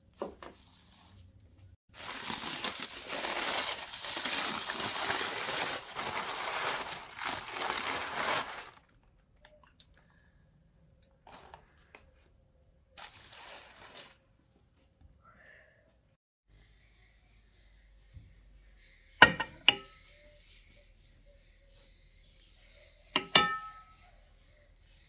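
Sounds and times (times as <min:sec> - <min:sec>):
aluminium foil crinkling: 0:02.0 - 0:10.1, 0:11.2 - 0:12.0, 0:13.0 - 0:14.9.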